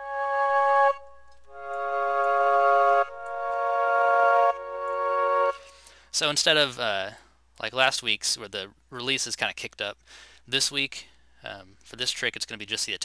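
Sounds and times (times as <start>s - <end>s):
sampled flute notes and chords: 0.0s - 6.1s.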